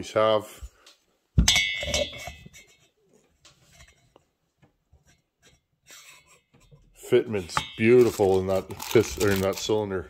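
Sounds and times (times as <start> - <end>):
ringing metal clink: 1.5 - 2.4.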